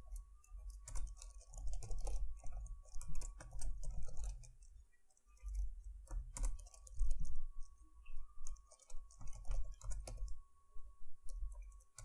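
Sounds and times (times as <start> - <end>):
faint steady whine: 0.0 - 12.0
keyboard keystrokes: 0.4 - 7.4, 8.4 - 10.4, 11.2 - 12.0.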